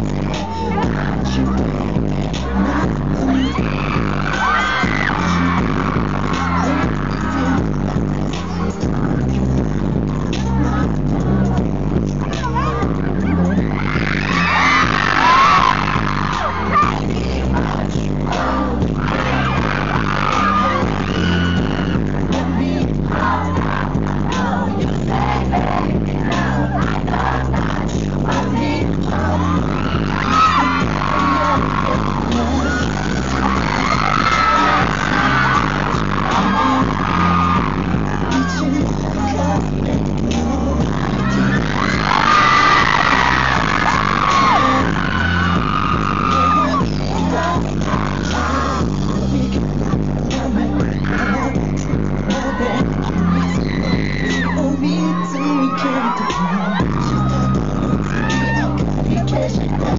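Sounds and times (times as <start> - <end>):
fans screaming: 0.0 - 11.6, 12.2 - 59.9
electronic dance track with bass beat: 0.0 - 59.9
live vocals: 0.0 - 59.9.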